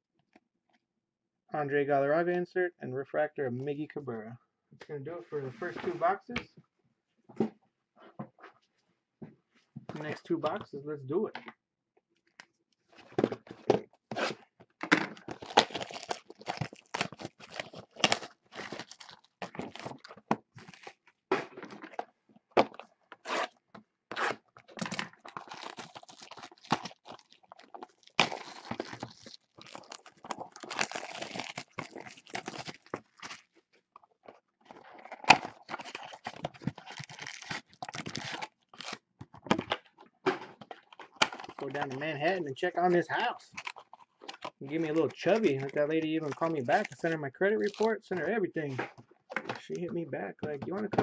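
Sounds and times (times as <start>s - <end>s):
crinkling of foil packs: 15.2s - 21.0s, 24.6s - 33.6s, 34.7s - 39.0s, 43.5s - 47.9s
plastic wrap tearing: 15.2s - 21.0s, 23.2s - 33.6s, 34.8s - 39.1s, 43.5s - 47.9s.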